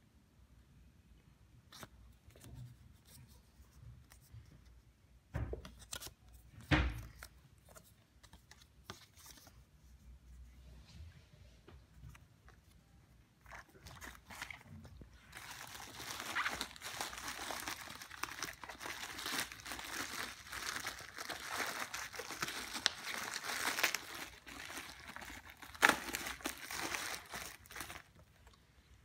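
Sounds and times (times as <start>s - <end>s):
bubble wrap crinkling: 12.5s - 28.6s.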